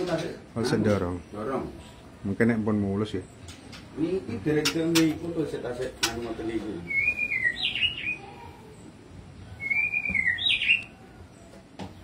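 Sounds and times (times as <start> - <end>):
songbird whistling call: 6.8 - 8.3, 9.6 - 11.1.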